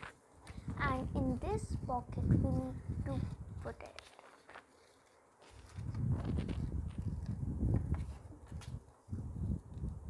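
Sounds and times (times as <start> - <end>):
paper rustling: 0.0 - 1.7, 2.4 - 9.1.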